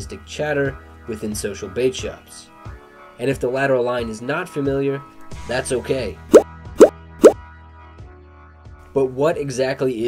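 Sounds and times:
soft background music: 0.0 - 10.0
cartoon bloop pops: 6.3 - 7.4.

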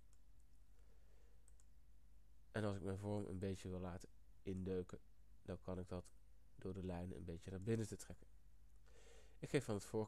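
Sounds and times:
computer mouse clicks: 1.4 - 1.8.

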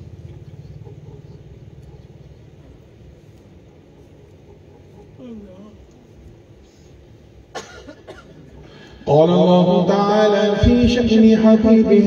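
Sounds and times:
low steady background noise: 0.0 - 12.0
person coughing: 7.5 - 8.6.

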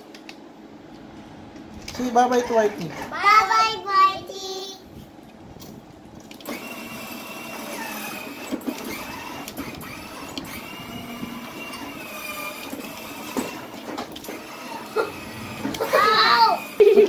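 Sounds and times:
small electric motor whirring: 6.4 - 17.0.

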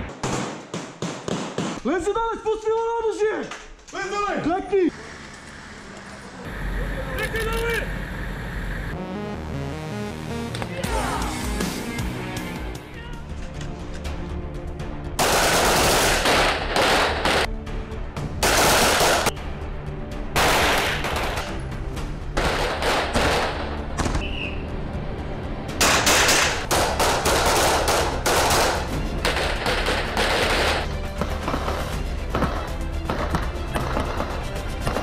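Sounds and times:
background music: 8.8 - 35.0
rapid gunfire: 15.2 - 17.5, 18.4 - 19.3, 22.4 - 23.7, 25.8 - 31.9.

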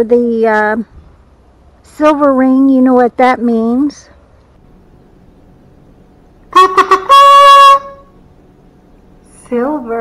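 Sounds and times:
toy kazoo buzzing notes: 6.5 - 8.2.

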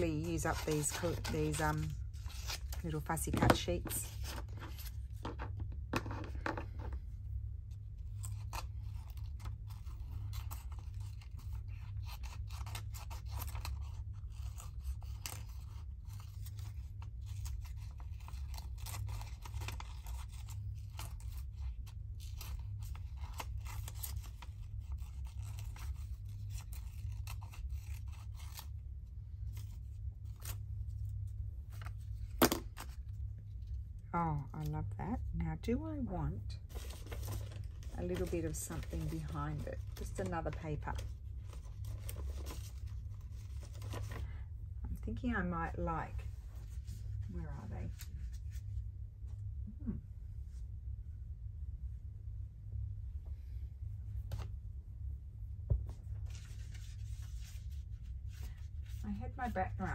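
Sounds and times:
scissors snipping paper: 0.0 - 4.9, 8.2 - 28.7
paper rustle: 0.0 - 5.5, 8.1 - 28.7, 36.6 - 44.4, 56.0 - 59.9
low steady hum: 0.0 - 59.9.

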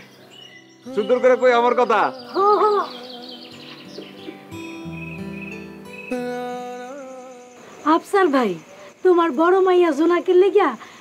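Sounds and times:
held notes of background music: 0.0 - 7.6.

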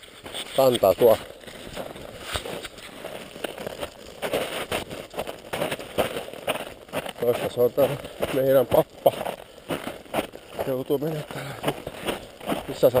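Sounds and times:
camera rustle: 0.0 - 7.0
footsteps crunching in snow: 0.0 - 13.0.

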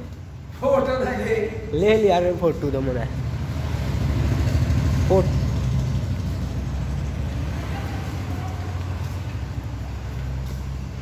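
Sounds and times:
engine rumbling: 0.0 - 11.0
faint voices: 7.3 - 10.2.

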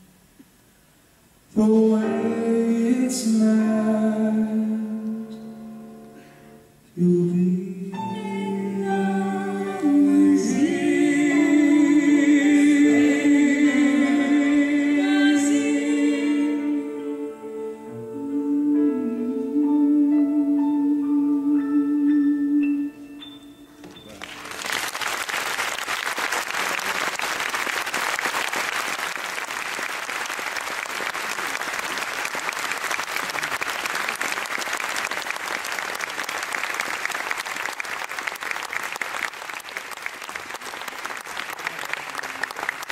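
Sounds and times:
audience applauding: 24.0 - 42.9.

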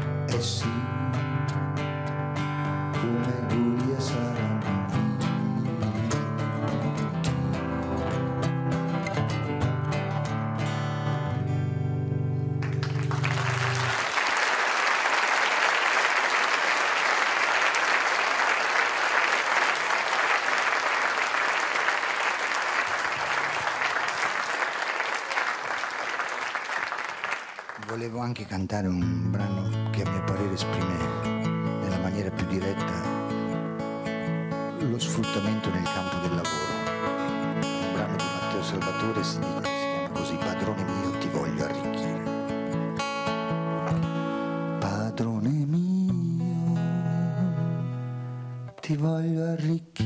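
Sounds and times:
acoustic guitar playing: 0.0 - 14.0, 28.8 - 49.7
audience applause: 12.6 - 28.2.

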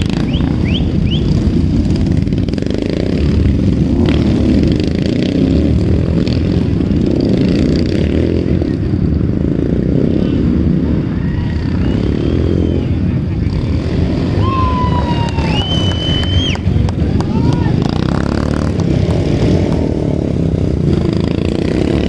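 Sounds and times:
racing motorcycles rumbling: 0.0 - 22.0.

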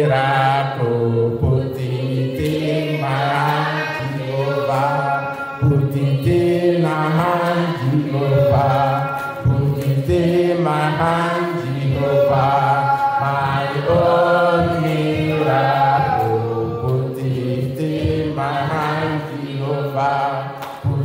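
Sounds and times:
voices singing chant-like phrases: 0.0 - 21.0.

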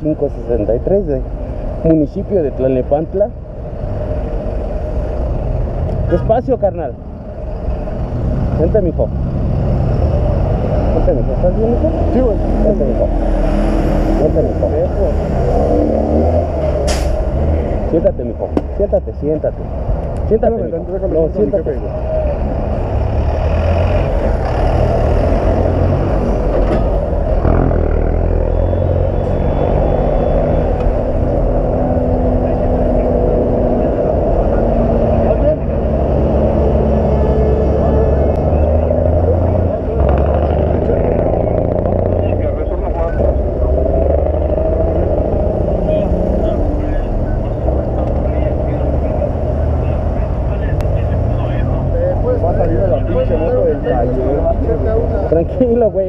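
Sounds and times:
street traffic rumble: 0.0 - 56.0.

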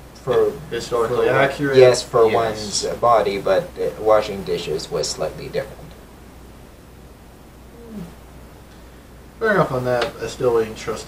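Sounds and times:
low hum: 0.0 - 9.8
faint falling vocal sound: 7.7 - 8.2.

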